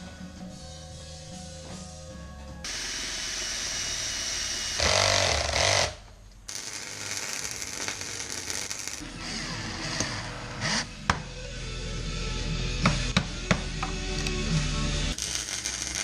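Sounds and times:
cordless drill driving screws: 4.6 - 6.0.

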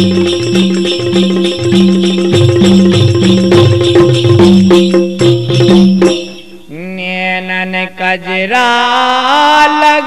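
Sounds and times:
drum and jingle rhythm: 0.0 - 6.8
man singing a long held note: 6.7 - 10.0.

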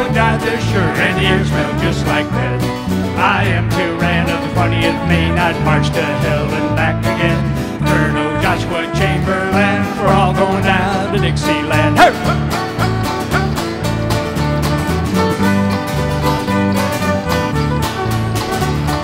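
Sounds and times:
bass guitar: 0.0 - 19.0
fiddle melody: 0.0 - 19.0
strummed acoustic string instruments: 0.0 - 19.0.

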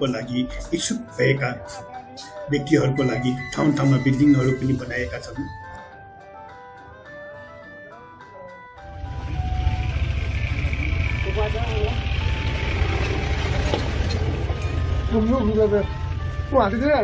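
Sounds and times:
music: 0.0 - 17.0
vehicle rumble with road noise: 8.8 - 17.0.

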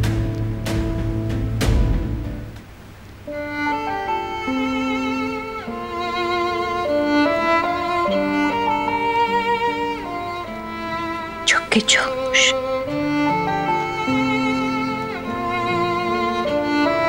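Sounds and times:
slow violin melody: 3.2 - 17.0.

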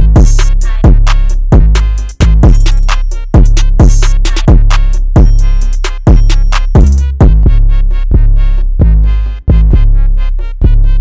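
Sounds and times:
trap hip-hop beat: 0.0 - 11.0.

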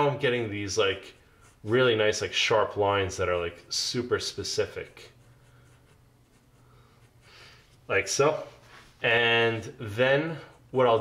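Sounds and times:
pencil scratching on paper: 0.0 - 2.8, 4.2 - 7.6, 10.1 - 11.0.

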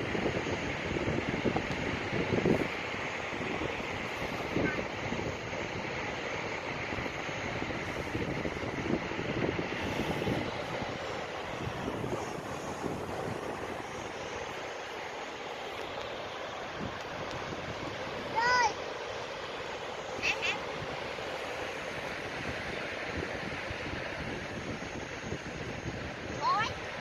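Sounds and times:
wind buffeting microphone: 0.0 - 19.4, 20.1 - 27.0
sea surf washing on shore: 0.0 - 27.0
high-pitched voice call: 20.2 - 20.6.

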